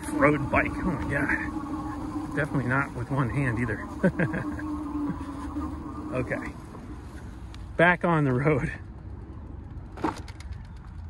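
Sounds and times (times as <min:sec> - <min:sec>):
bike tyres rolling on asphalt: 0:00.0 - 0:11.0
wind rumble on microphone: 0:00.0 - 0:11.0.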